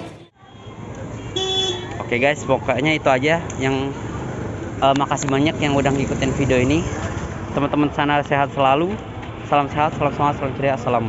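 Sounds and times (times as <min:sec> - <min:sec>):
vehicle horn toot: 0:00.0 - 0:02.1
busy street noise: 0:00.0 - 0:11.0.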